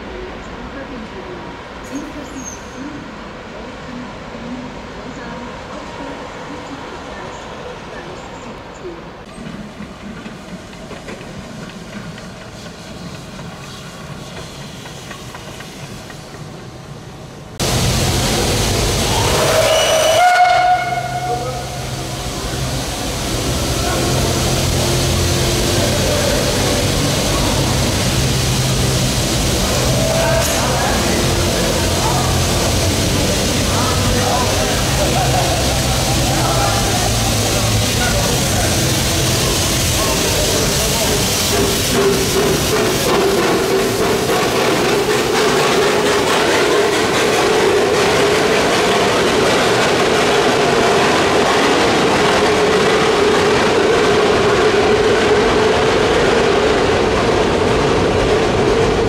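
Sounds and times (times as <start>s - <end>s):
steam hissing: 9.6s - 57.0s
steam whistle blast: 19.0s - 21.8s.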